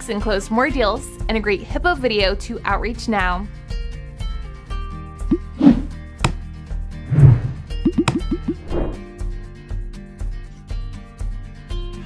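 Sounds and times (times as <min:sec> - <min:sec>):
brief swish: 0:05.6 - 0:05.9, 0:07.1 - 0:07.7
rising plop sound effects: 0:07.1 - 0:09.0
background music with steady beat: 0:07.6 - 0:12.0.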